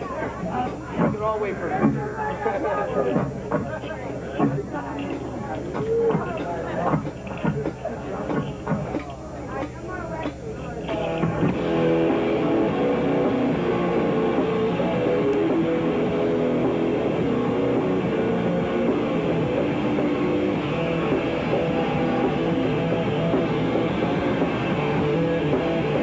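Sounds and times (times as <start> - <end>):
voices: 0.0 - 26.0
noise-rock band playing: 10.9 - 26.0.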